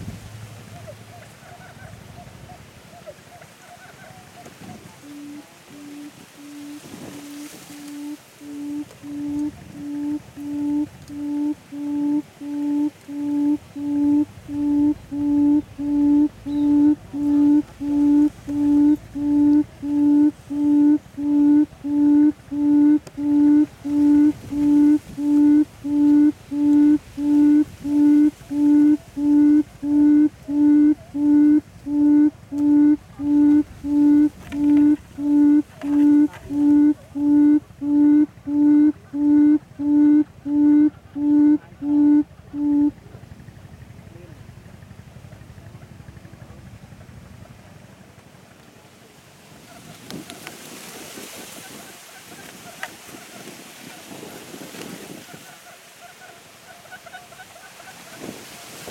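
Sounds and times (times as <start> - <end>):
low booming bird hooting: 4.4 - 43.1.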